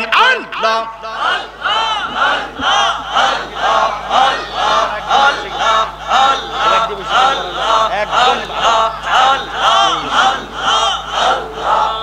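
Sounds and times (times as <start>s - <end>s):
congregation chanting in unison: 0.3s - 12.0s.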